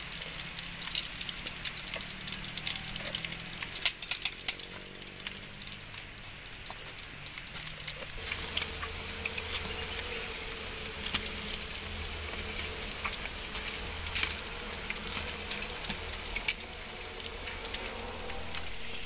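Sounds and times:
insects droning: 0:00.0 - 0:19.0.

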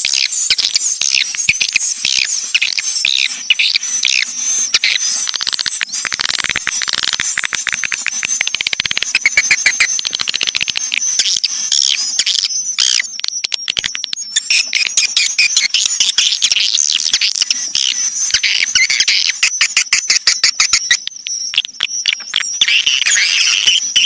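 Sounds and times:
swiftlets chirping: 0:00.0 - 0:24.0
rapid clicks: 0:00.3 - 0:16.2, 0:18.4 - 0:24.0.

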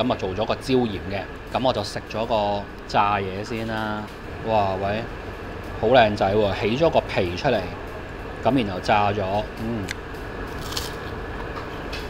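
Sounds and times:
room hum: 0:00.0 - 0:12.0
crispy fish skin being chewed: 0:10.5 - 0:11.2.

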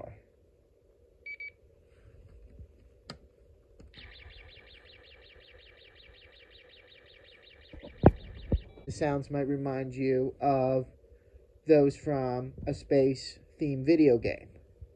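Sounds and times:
pulsing electronic tone: 0:04.0 - 0:09.0
loud thumps: 0:07.7 - 0:08.9.

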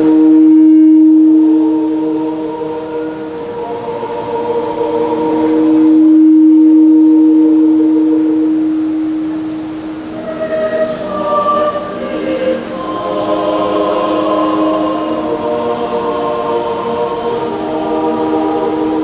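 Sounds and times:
mixed choir singing in parts: 0:01.1 - 0:19.0.

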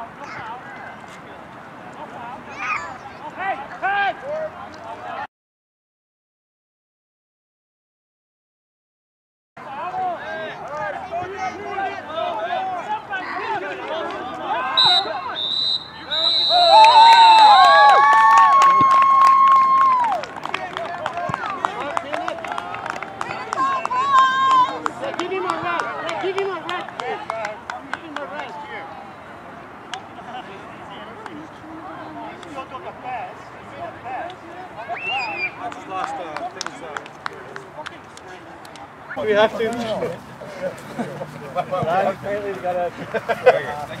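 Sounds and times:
referee's whistle: 0:14.8 - 0:17.7, 0:34.9 - 0:35.6
people talking quietly: 0:20.0 - 0:44.0
players shouting excitedly: 0:23.2 - 0:26.5
scattered claps and smacks: 0:35.6 - 0:38.9.

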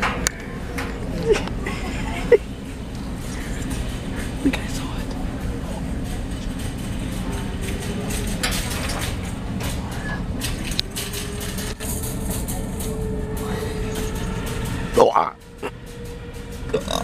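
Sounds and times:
faint music: 0:00.0 - 0:17.0.

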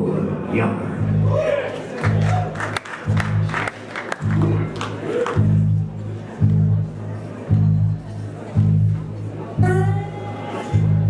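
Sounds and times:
low bass notes: 0:00.0 - 0:11.0
live blues band playing: 0:02.0 - 0:11.0.

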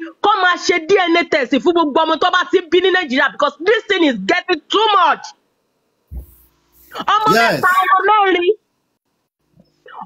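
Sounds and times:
man drawing out a word: 0:06.1 - 0:07.8.

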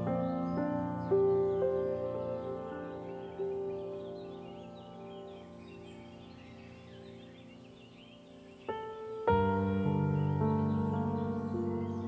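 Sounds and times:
faint birdsong: 0:00.0 - 0:12.0
soft ambient music: 0:00.0 - 0:12.0.

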